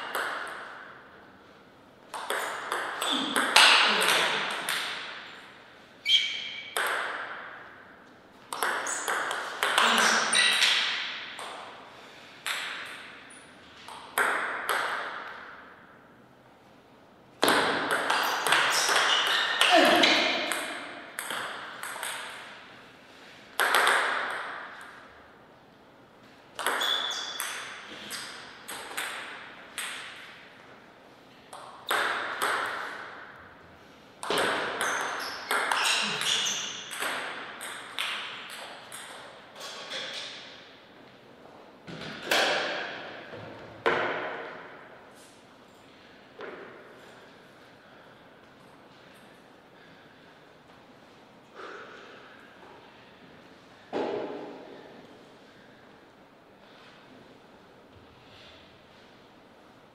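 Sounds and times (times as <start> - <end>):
table tennis ball clicking off bats: 0.0 - 0.9, 2.1 - 5.1, 6.4 - 7.5, 8.5 - 11.7, 13.8 - 15.6, 23.6 - 25.0, 26.6 - 30.3, 34.2 - 39.3
ball bouncing on table: 6.1 - 7.5, 8.5 - 11.6, 17.4 - 22.4, 23.6 - 24.5, 26.6 - 30.2.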